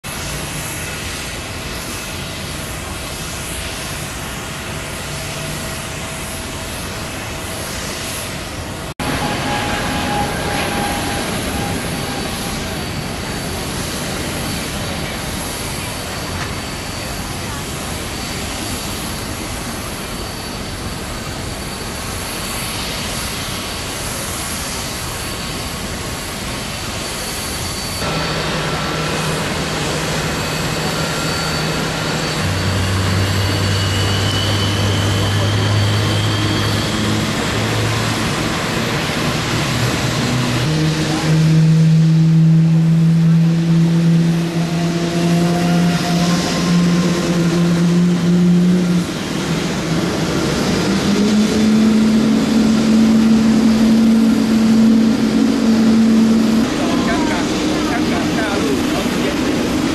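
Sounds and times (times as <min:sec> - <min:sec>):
jet engines at high power: 0:00.0 - 0:59.9.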